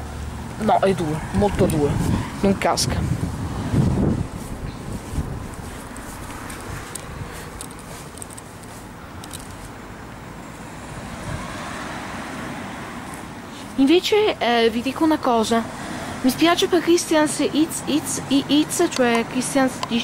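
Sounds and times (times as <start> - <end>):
road traffic: 0.0 - 20.0
vehicle passing: 0.0 - 20.0
wind buffeting microphone: 0.8 - 8.3, 11.0 - 11.6.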